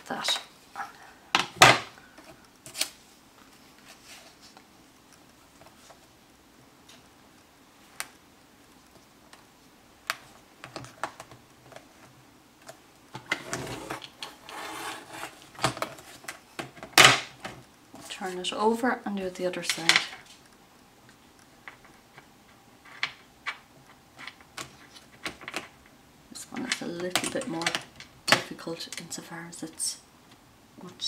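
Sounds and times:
trimmer blade scraping along rail: 13.5 - 15.4.

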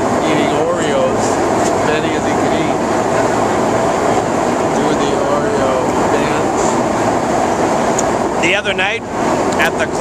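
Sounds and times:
aircraft engine and airflow drone: 0.0 - 10.0.

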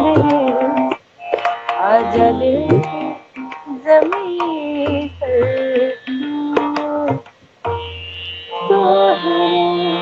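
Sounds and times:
woman singing classical vocals: 0.0 - 1.0, 1.8 - 7.3, 8.6 - 10.0.

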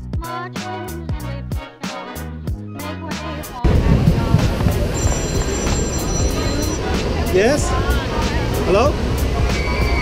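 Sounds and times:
background music: 0.0 - 10.0
wind buffeting microphone: 3.6 - 9.4.

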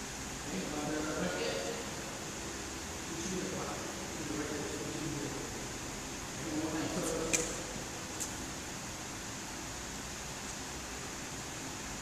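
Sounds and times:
air conditioning hiss: 0.0 - 12.0.

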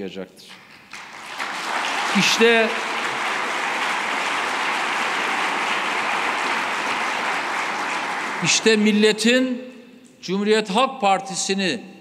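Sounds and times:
audience applause: 0.5 - 9.0.

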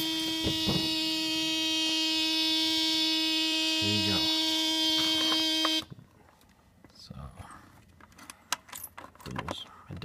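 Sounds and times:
car warning buzzer: 0.0 - 5.9.

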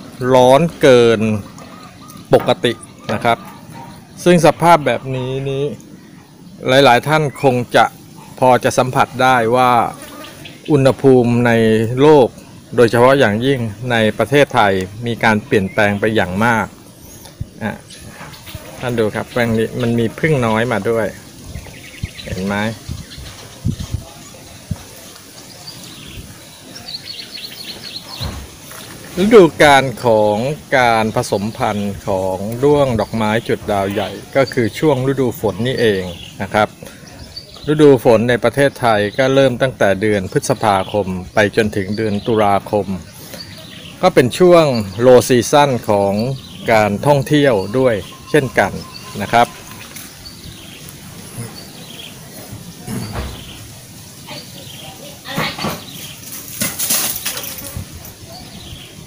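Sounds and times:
bird chirping: 0.0 - 59.0
outdoor background noise: 0.0 - 59.0
faint high chirps: 44.9 - 52.2.

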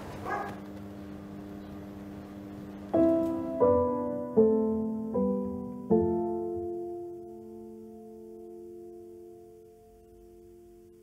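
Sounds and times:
soft background music chord: 1.1 - 11.0.

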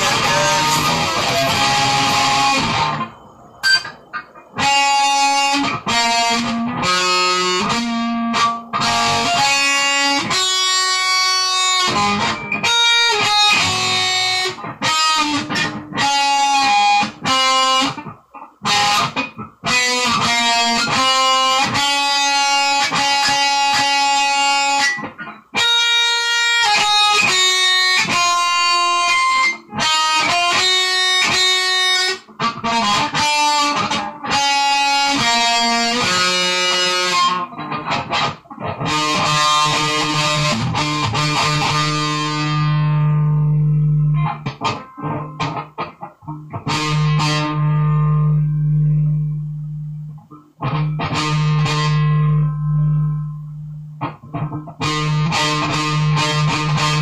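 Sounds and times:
distorted electric guitar: 0.0 - 57.0.

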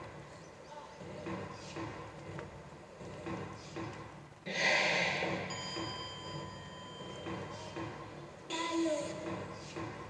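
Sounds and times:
noisy burst: 4.5 - 5.9.

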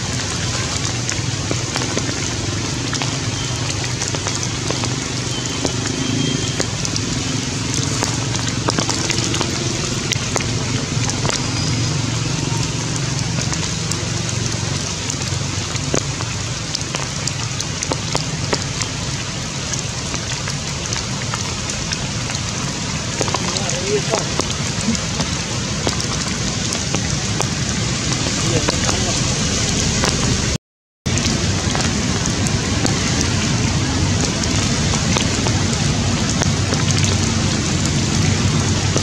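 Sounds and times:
rain falling on leaves: 0.0 - 39.0.

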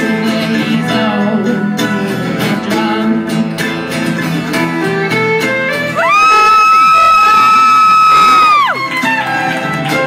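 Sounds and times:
band playing: 0.0 - 10.0
high-pitched cheering whoop: 6.0 - 9.6.

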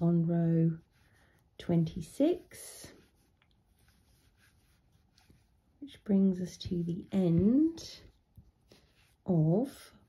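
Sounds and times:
crochet hook rubbing yarn: 0.0 - 8.2.

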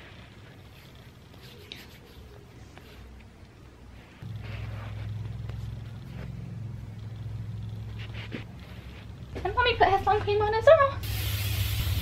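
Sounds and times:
faint soft rubbing: 0.0 - 3.2, 3.8 - 6.8, 7.8 - 9.6
low steady hum: 0.0 - 12.0.

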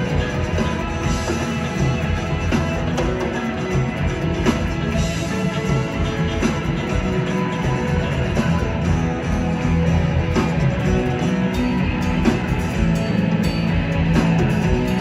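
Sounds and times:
bass guitar: 0.0 - 15.0
drums: 0.0 - 15.0
electric guitars: 0.0 - 15.0.

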